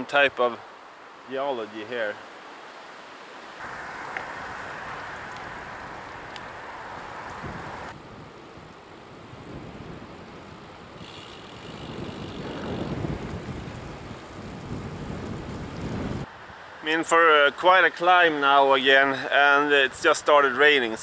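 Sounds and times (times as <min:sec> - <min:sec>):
bicycle on wet asphalt: 0:03.3 - 0:16.8
wind on microphone: 0:03.6 - 0:16.6.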